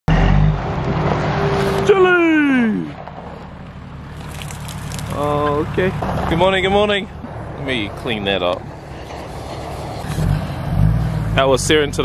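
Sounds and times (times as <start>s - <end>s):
engine humming: 0.1s - 12.0s.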